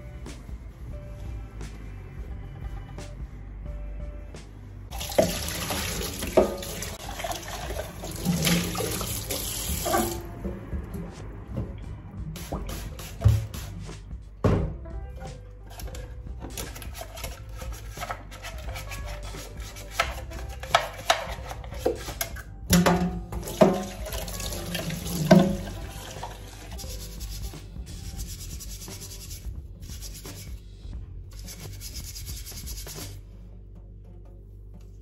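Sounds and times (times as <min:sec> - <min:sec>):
steel wool scrubbing sink: 0:04.9 - 0:10.3, 0:15.7 - 0:22.4, 0:23.4 - 0:30.6, 0:31.4 - 0:33.2
tap water running: 0:04.9 - 0:10.3, 0:22.8 - 0:27.0.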